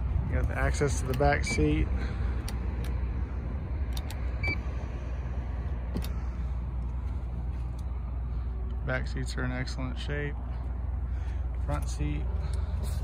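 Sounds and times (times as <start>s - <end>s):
high electronic beep: 4.4s - 4.6s.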